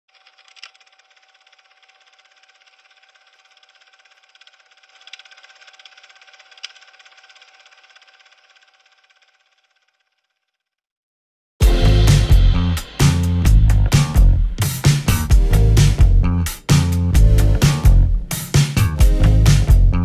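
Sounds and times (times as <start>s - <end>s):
film projector whine and ticking: 0.3s - 9.2s
sharp projector clicks: 0.5s - 8.0s.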